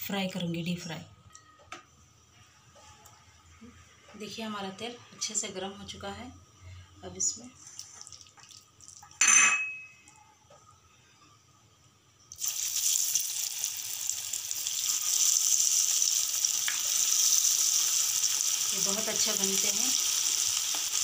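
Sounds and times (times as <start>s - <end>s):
batter deep-frying sizzle: 7.6s - 9.2s, 12.2s - 21.0s
short clink: 9.2s - 10.0s.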